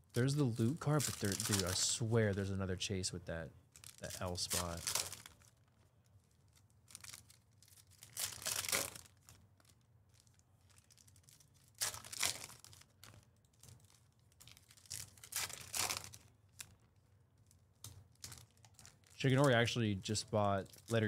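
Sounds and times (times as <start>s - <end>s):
card pack wrappers tearing: 0.2s - 2.0s, 3.8s - 5.6s, 6.5s - 16.8s, 17.8s - 21.0s.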